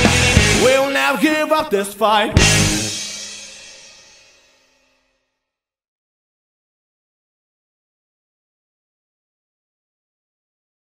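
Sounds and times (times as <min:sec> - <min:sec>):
punk rock final chord: 0:00.0 - 0:01.0, 0:02.4 - 0:04.3.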